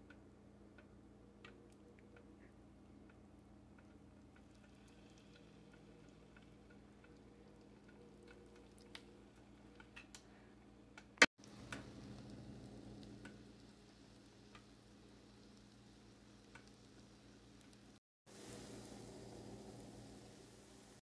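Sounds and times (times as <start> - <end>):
batter sizzling in a pan: 3.7 - 21.0.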